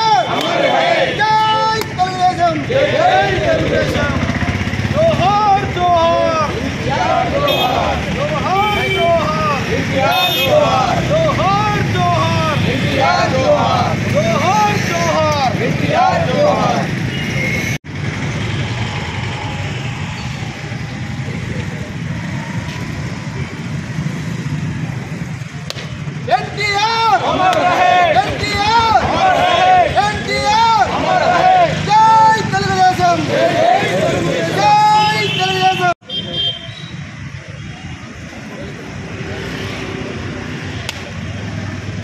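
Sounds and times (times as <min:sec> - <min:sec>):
men shouting slogans: 0:00.0 - 0:17.0, 0:26.2 - 0:36.0
motor traffic hum: 0:00.0 - 0:42.0.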